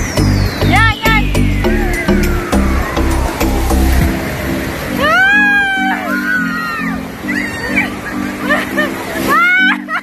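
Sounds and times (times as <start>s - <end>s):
pulsing low accompaniment: 0.0s - 5.1s.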